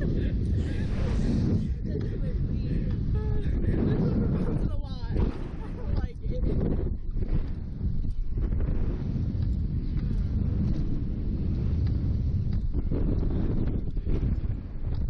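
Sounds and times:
rushing air buffeting microphone: 0.0s - 15.0s.

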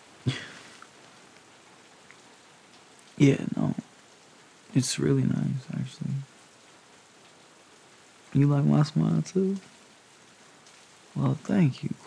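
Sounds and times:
light rain hiss: 0.0s - 12.0s.

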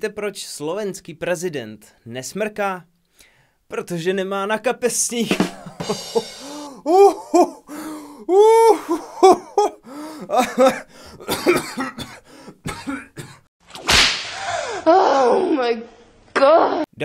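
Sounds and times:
man laughing and coughing: 5.3s - 13.4s.

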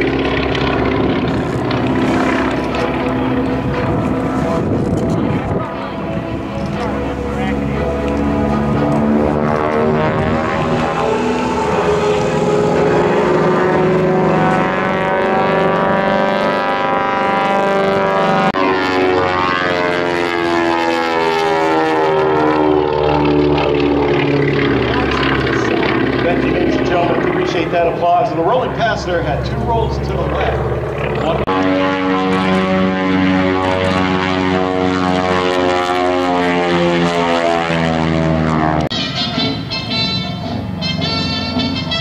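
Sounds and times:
propeller airplane droning overhead: 0.0s - 42.0s.

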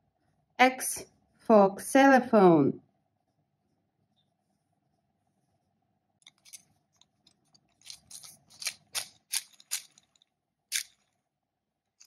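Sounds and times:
plastic toy clicks and rattles: 7.7s - 11.1s.

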